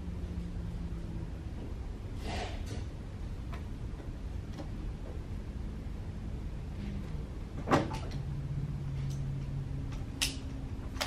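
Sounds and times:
steady low rumble: 0.0 - 2.2.

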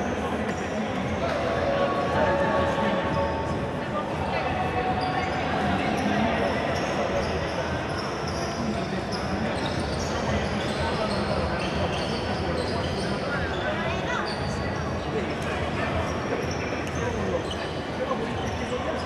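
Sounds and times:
indistinct voices: 0.0 - 19.0.

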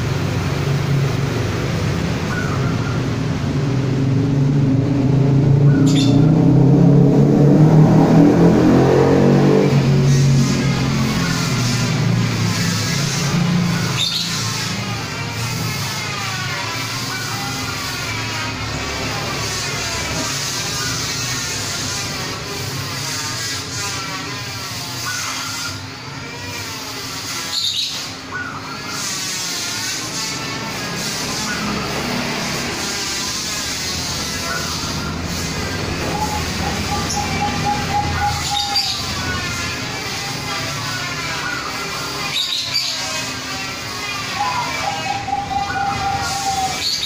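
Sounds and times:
steady background hum: 0.0 - 47.0
high bird chirps: 5.6 - 6.4, 12.6 - 14.7, 34.3 - 39.7, 40.3 - 43.3, 44.1 - 47.0
doves cooing: 34.1 - 47.0.

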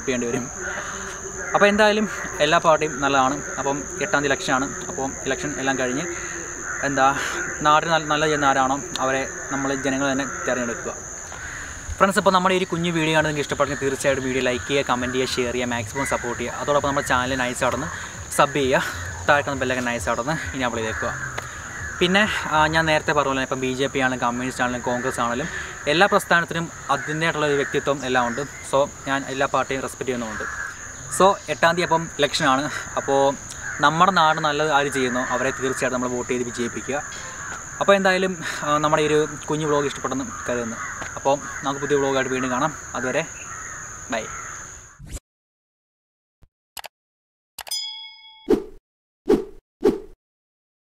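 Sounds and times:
man talking: 0.0 - 11.0, 12.0 - 21.2, 22.0 - 30.5, 31.1 - 37.1, 37.8 - 43.3
high-pitched insect drone: 0.0 - 45.0
bell-like ding: 47.6 - 48.7.

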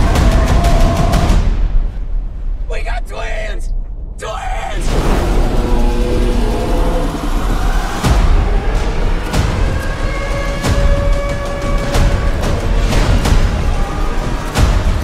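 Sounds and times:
dramatic music: 0.0 - 2.6, 3.8 - 15.0
deep storm rumble: 0.0 - 15.0.

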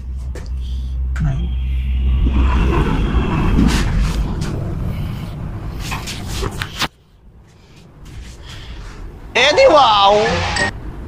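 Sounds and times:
lift car hum and rumble: 0.0 - 11.0.

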